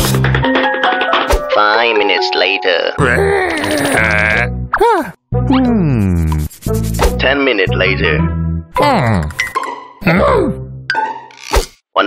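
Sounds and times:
background music: 0:00.0 - 0:11.4
cartoon voice groaning and whining: 0:03.0 - 0:06.3.

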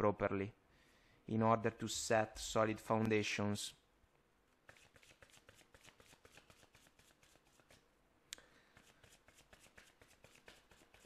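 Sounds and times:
cards being shuffled: 0:04.7 - 0:07.8, 0:08.8 - 0:11.0.

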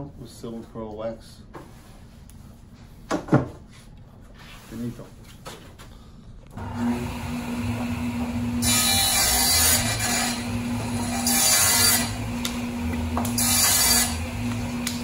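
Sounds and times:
saw cutting through board: 0:06.6 - 0:15.0
table saw running: 0:06.6 - 0:15.0.

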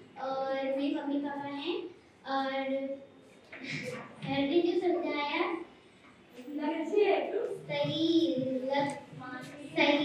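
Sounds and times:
girl speaking through microphone: 0:00.0 - 0:05.8, 0:06.4 - 0:10.0.

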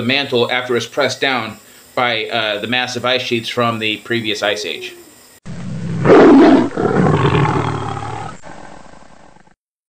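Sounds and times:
loud animal-like roar: 0:05.5 - 0:09.5.

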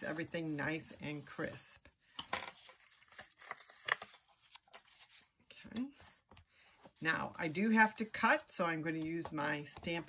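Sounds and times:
paper rustling: 0:00.0 - 0:01.6, 0:02.4 - 0:10.0.

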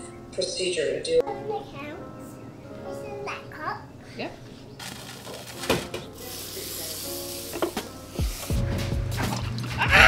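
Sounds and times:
liquid spraying and spattering: 0:04.8 - 0:08.6.

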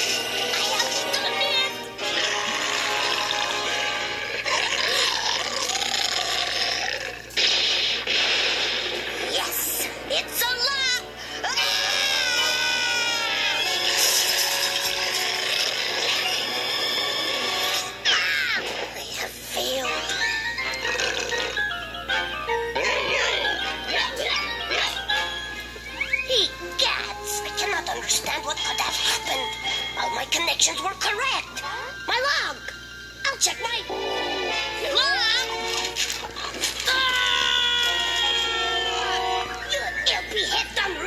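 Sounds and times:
cartoon music: 0:00.0 - 0:06.7, 0:09.3 - 0:18.7, 0:19.6 - 0:41.0
creature growling: 0:02.0 - 0:07.5, 0:11.5 - 0:13.1, 0:13.9 - 0:18.7, 0:22.8 - 0:25.0, 0:33.9 - 0:35.4.

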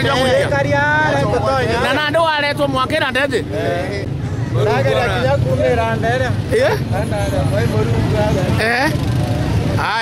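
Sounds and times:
people talking: 0:00.0 - 0:09.0.

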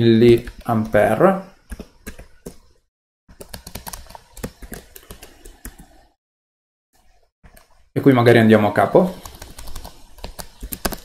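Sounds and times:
computer keyboard typing: 0:00.3 - 0:02.7, 0:03.3 - 0:06.1, 0:09.2 - 0:11.0.

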